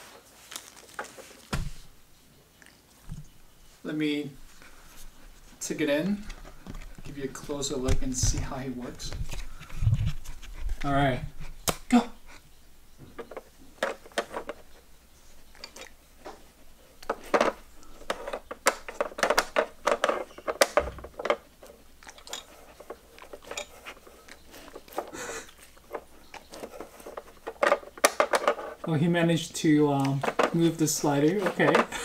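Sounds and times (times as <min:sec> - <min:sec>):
plastic puzzle pieces clicking: 0:17.0 - 0:28.9, 0:30.0 - 0:32.0.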